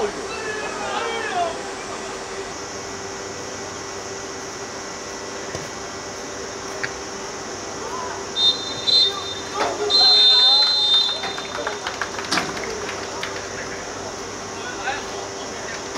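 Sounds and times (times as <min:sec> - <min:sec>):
steady background hum: 0:00.0 - 0:15.9
referee's whistle blasts: 0:08.4 - 0:11.8.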